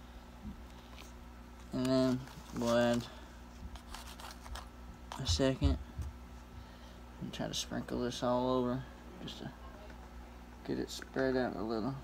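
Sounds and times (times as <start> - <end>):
packet rustling: 0.9 - 5.3.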